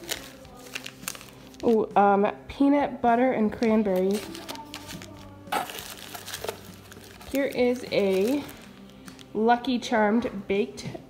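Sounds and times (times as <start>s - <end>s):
paper and wrappers rustling: 0.0s - 2.0s, 3.5s - 9.4s.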